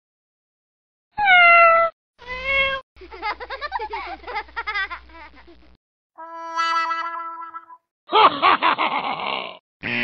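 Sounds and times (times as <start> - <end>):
cat meowing: 1.2 - 2.8.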